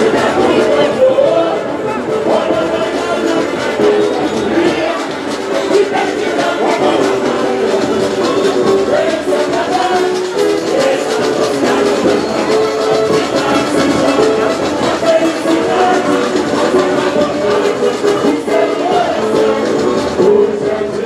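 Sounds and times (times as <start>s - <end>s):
many voices singing: 0.0s - 21.0s
samba drums and percussion: 0.0s - 21.0s.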